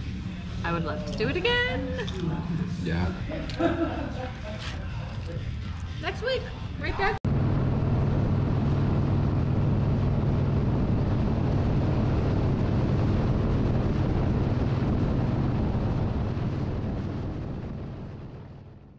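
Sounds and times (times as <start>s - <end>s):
wind rush on microphone: 6.0s - 18.9s.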